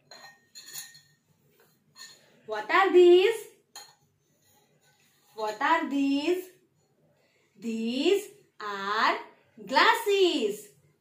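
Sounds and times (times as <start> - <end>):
metal tumblers clinking: 0.0 - 1.3, 1.9 - 2.3
person speaking: 5.4 - 6.5.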